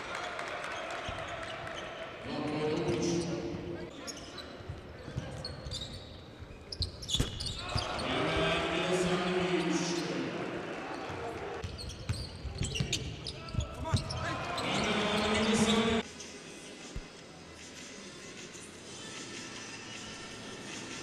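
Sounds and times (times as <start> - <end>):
crowd chanting: 14.3 - 16.0.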